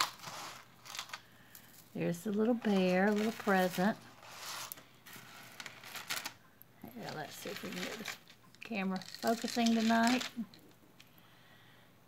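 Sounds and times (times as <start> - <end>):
jewelry clicking and rustling: 0.0 - 11.2.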